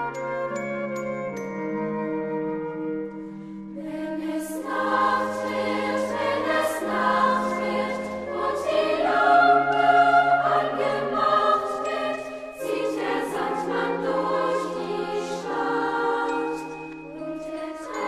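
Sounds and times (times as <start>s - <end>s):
children's choir singing: 3.8s - 18.0s.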